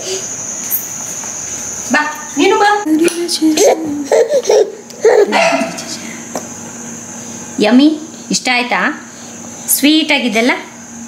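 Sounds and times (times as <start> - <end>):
baby giggling and babbling: 3.4 - 5.8.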